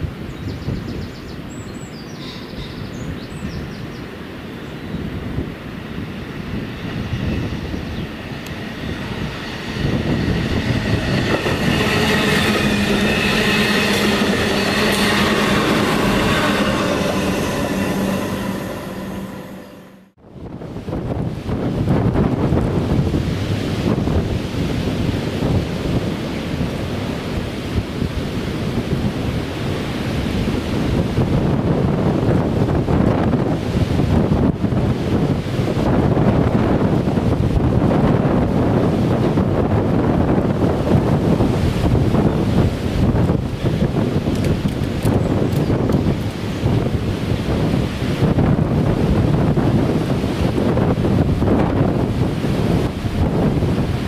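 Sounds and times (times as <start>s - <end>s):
wind on microphone: 0.0s - 54.0s
rail vehicle diesel engine hum: 1.4s - 54.0s
diesel locomotive rumble: 5.8s - 20.1s.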